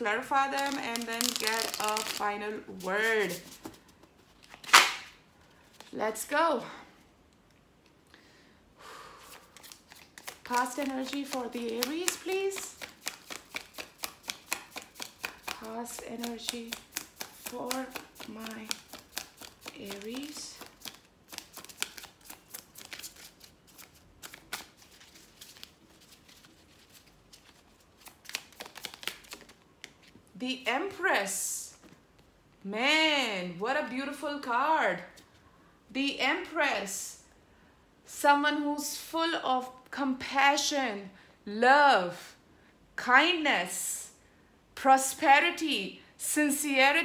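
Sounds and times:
cards shuffling: 0:00.5 - 0:06.0, 0:09.2 - 0:30.2.

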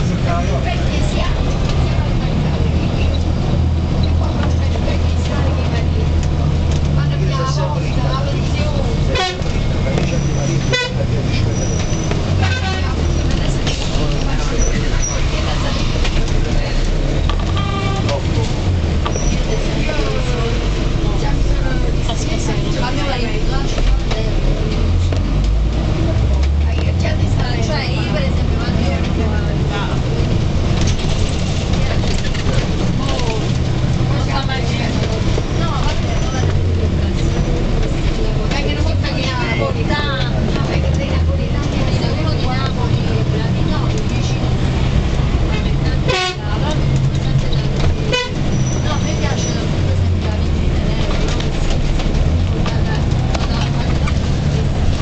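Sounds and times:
bus engine running: 0:00.0 - 0:55.0
horn toots: 0:10.6 - 0:11.1, 0:12.4 - 0:13.1, 0:17.4 - 0:18.3, 0:46.0 - 0:46.6, 0:48.1 - 0:48.8.

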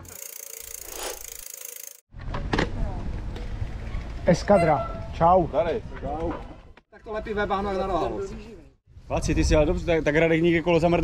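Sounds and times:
wind rumbling on microphone: 0:08.9 - 0:11.0.

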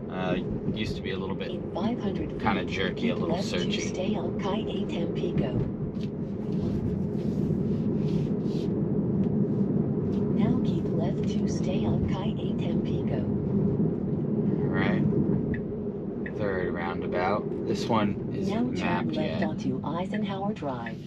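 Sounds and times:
road and tyre noise in car cabin: 0:00.0 - 0:21.0
low voices: 0:00.1 - 0:05.7, 0:10.4 - 0:13.3, 0:14.5 - 0:15.1, 0:16.3 - 0:21.0.

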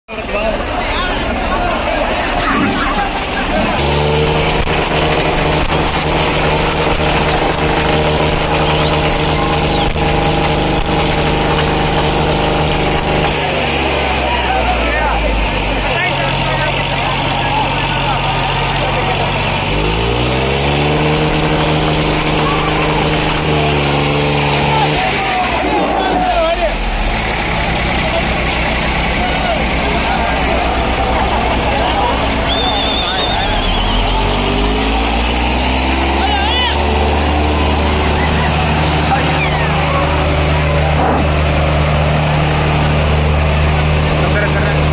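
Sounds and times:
tractor diesel engines revving: 0:00.1 - 0:44.9
crowd shouting: 0:00.2 - 0:44.7.

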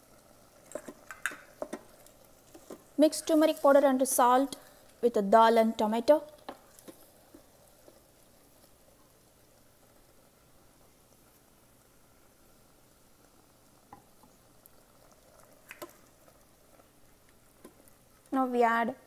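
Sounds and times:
faint food sizzle: 0:00.0 - 0:19.0
wooden spoon clicking on pot: 0:00.7 - 0:01.9, 0:15.6 - 0:16.0.

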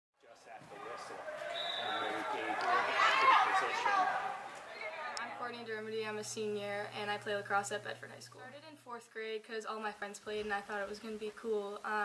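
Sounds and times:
players calling out: 0:00.4 - 0:07.5.

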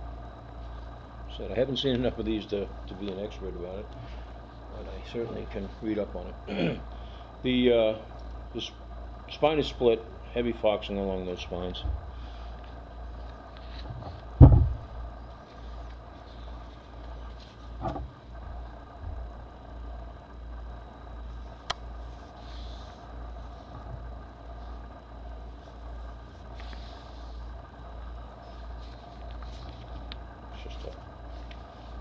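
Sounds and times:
steady low hum: 0:00.0 - 0:32.0
thumps: 0:13.8 - 0:15.0, 0:17.8 - 0:18.2.

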